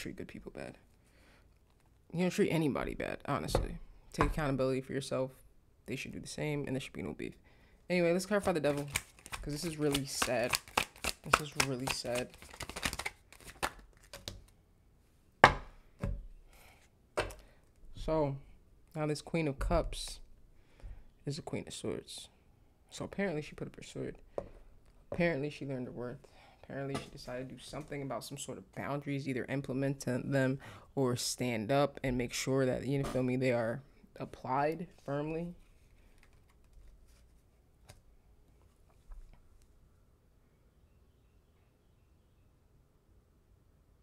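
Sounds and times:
faint clicks of cards handled: 34.7 - 39.8.

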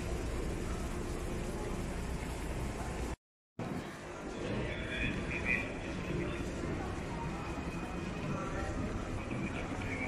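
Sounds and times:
airport terminal crowd noise: 0.0 - 10.0.

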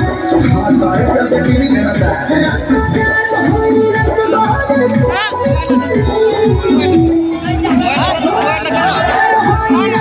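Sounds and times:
crowd chattering and shouting: 0.0 - 10.0
loud dance music: 0.0 - 10.0.

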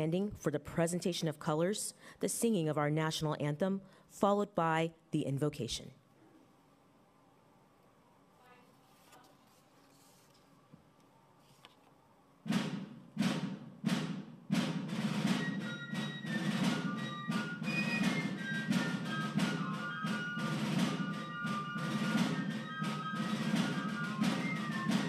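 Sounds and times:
military drum cadence: 12.4 - 25.0
high piping melody: 15.5 - 25.0.

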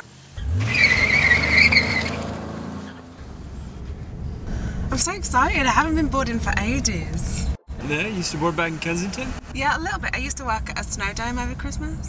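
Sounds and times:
road noise: 0.0 - 12.0
truck engine revving: 0.0 - 12.0
tyres squealing: 0.4 - 11.8.

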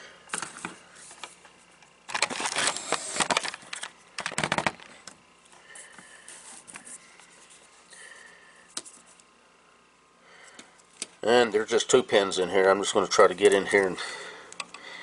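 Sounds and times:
rustling handling noise: 0.3 - 7.9.

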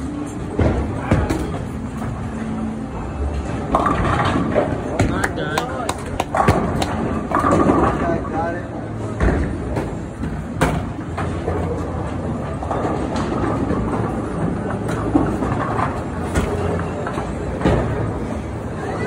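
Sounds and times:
bowling balls rolling: 0.2 - 19.0.

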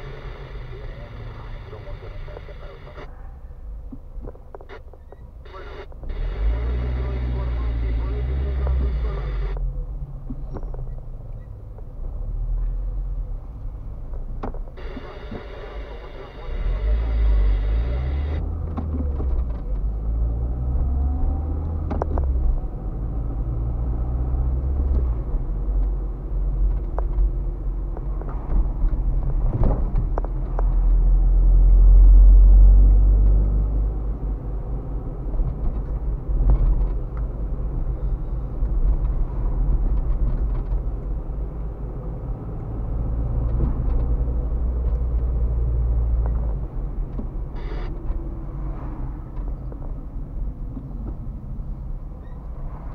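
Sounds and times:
engine and tyre rumble: 0.0 - 52.9.

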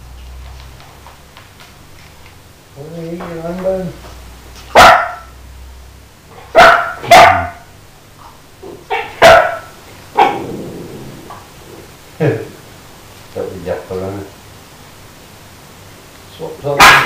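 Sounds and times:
dog barking: 4.7 - 5.3, 6.4 - 7.7, 8.9 - 10.4, 16.8 - 17.0.

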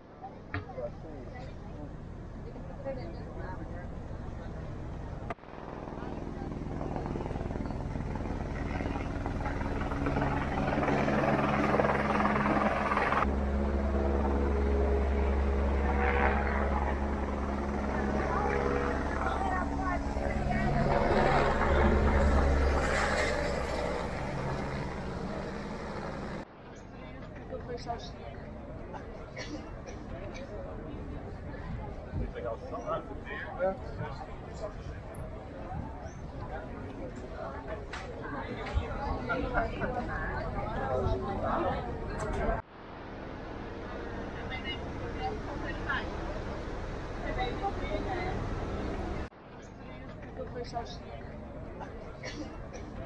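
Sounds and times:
helicopter engine and rotor: 1.2 - 26.4, 38.4 - 49.3.

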